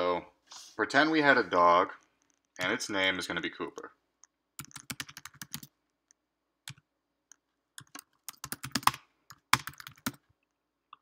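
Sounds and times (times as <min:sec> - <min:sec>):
computer keyboard typing: 0:04.2 - 0:05.8, 0:06.7 - 0:10.2.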